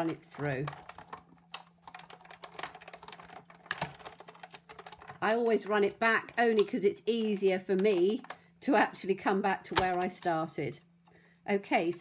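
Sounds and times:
small irregular clicks: 0.0 - 8.5.

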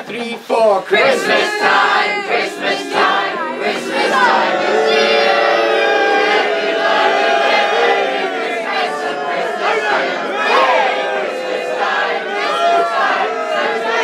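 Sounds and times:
crowd singing together: 0.8 - 14.0.

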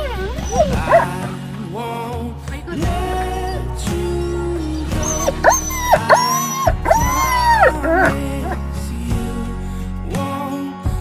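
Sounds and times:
dog whining: 0.0 - 1.4, 3.1 - 8.6
background music: 0.0 - 11.0.

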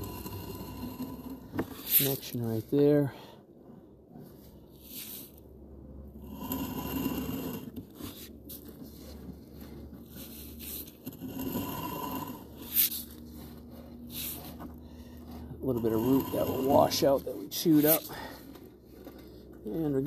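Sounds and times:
cable scraping in pipe: 0.0 - 2.8, 6.1 - 20.0
steady low hum: 0.0 - 20.0.

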